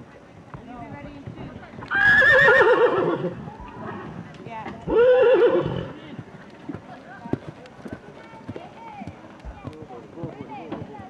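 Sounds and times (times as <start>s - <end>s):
horse whinnying: 1.9s - 4.0s, 4.9s - 6.0s.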